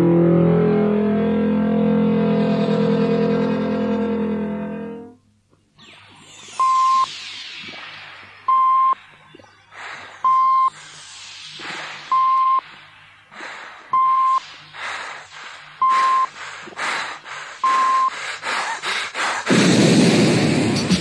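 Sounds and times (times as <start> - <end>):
dense noise bursts: 5.7 - 21.0
electronic beep: 5.8 - 10.8, 12.1 - 12.6, 13.9 - 14.5, 15.8 - 16.4, 17.6 - 18.1
noisy downward swooshes: 5.8 - 14.7.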